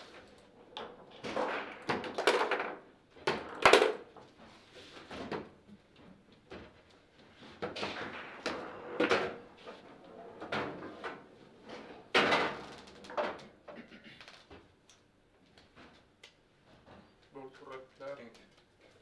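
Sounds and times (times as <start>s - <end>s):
foosball table clattering: 0.1s - 4.4s, 7.6s - 13.6s.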